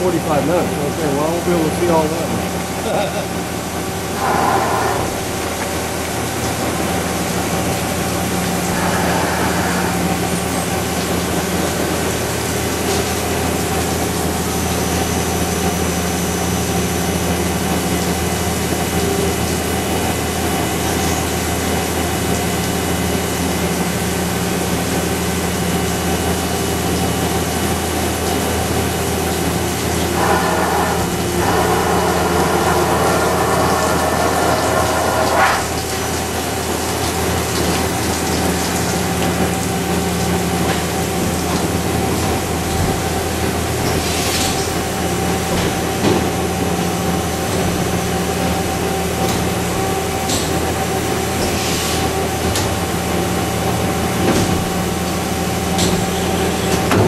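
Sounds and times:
coolant flowing: 0:00.0 - 0:57.0
machining center humming: 0:00.0 - 0:57.0.

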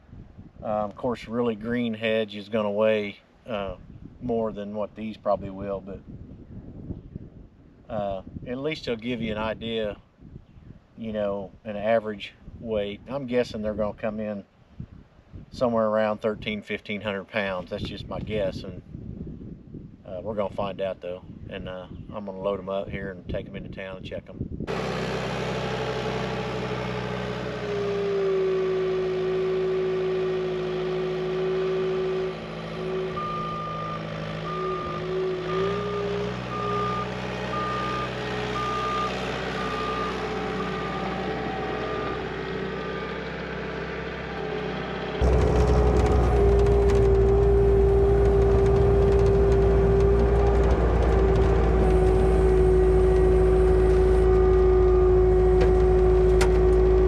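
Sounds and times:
diesel engine running: 0:24.7 - 0:57.0
backup alarm beeping: 0:33.0 - 0:43.1.

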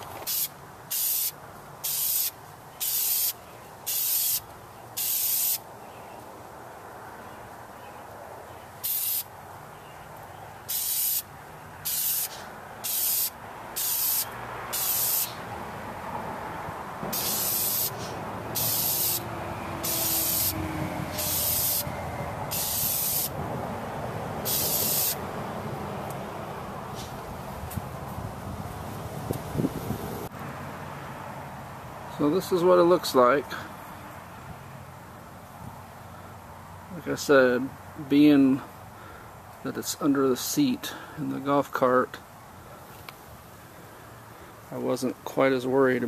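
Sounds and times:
spray paint can hissing: 0:00.2 - 0:05.6, 0:08.8 - 0:09.3, 0:10.7 - 0:15.4, 0:17.1 - 0:21.9, 0:22.5 - 0:23.4, 0:24.4 - 0:25.2.

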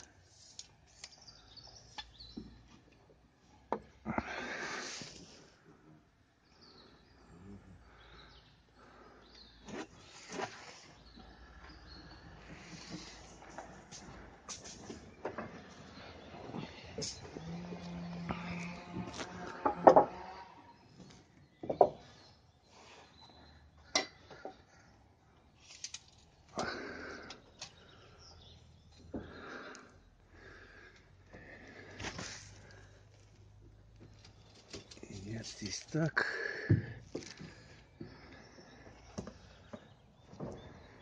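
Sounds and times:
knocks and clicks on timber roof: 0:19.5 - 0:20.3.

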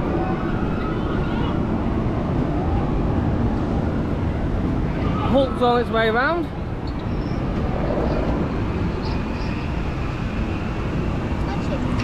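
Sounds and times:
outdoor rumble and hiss: 0:00.0 - 0:12.0.

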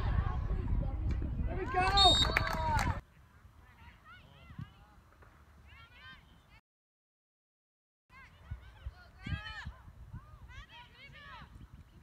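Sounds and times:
wind on microphone: 0:00.0 - 0:03.0, 0:08.2 - 0:12.0.

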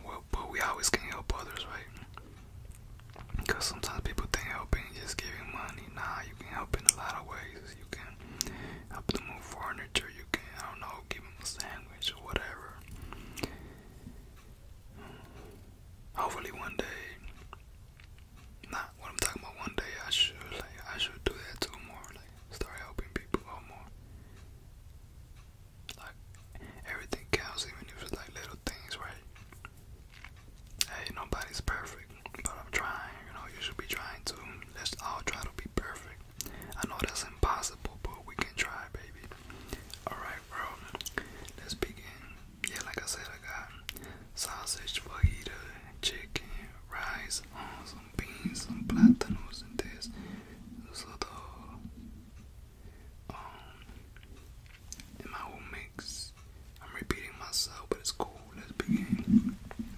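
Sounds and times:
man whispering: 0:00.0 - 0:17.6, 0:18.4 - 0:24.0, 0:25.9 - 0:52.5, 0:53.2 - 0:59.9
mouth clicks: 0:45.1 - 0:52.2, 0:58.3 - 0:59.9.

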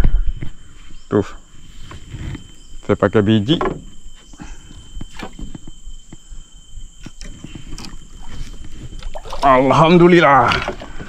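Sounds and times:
fish splashing at water surface: 0:07.7 - 0:09.8.

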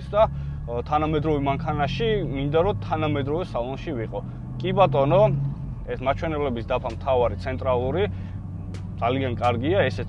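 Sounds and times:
man talking: 0:00.0 - 0:08.2, 0:09.0 - 0:10.0
car engine hum: 0:00.0 - 0:10.0
road noise: 0:00.0 - 0:10.0.

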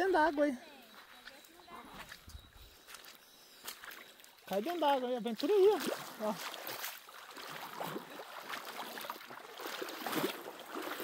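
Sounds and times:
footsteps on stones: 0:00.9 - 0:05.8.

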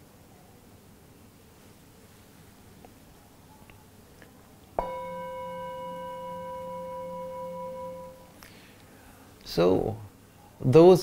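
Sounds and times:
singing bowl ringing: 0:04.8 - 0:08.4
singing bowl struck: 0:04.8 - 0:08.4.

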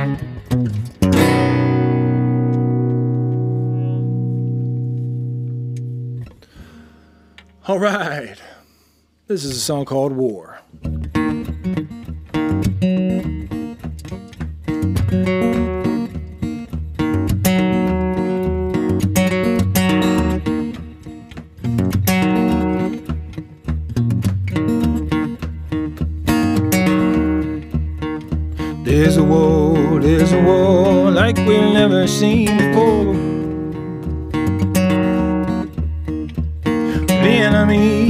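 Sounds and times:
acoustic guitar strumming: 0:00.0 - 0:08.4, 0:10.7 - 0:38.0
man singing: 0:28.8 - 0:33.6, 0:37.0 - 0:38.0.

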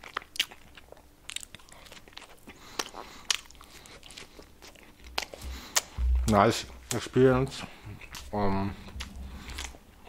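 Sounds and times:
person chewing: 0:00.0 - 0:07.0, 0:07.6 - 0:10.0.

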